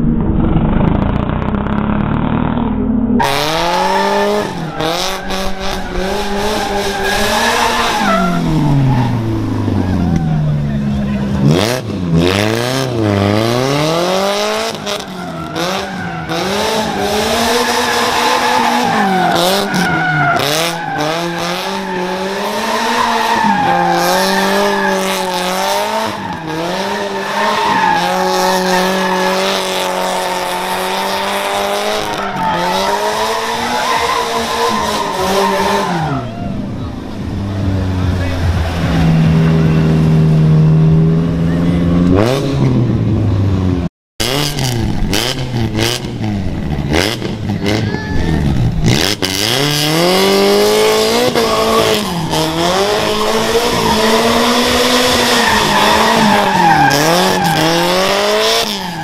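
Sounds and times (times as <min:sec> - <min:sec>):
car engine revving high: 0:00.0 - 0:59.0
tyres squealing and skidding: 0:03.2 - 0:42.7, 0:46.7 - 0:59.0.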